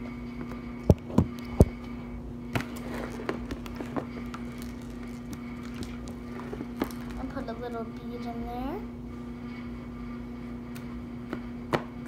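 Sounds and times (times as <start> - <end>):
steady low hum: 0.0 - 12.0
slime being kneaded: 2.6 - 7.4.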